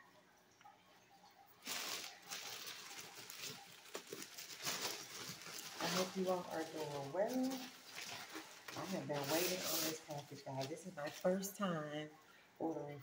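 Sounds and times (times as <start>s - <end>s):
plastic bag rustling and crinkling: 1.6s - 11.6s.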